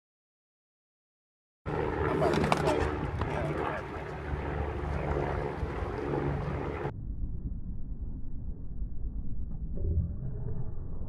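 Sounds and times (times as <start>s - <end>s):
faint talk: 2.0s - 4.0s.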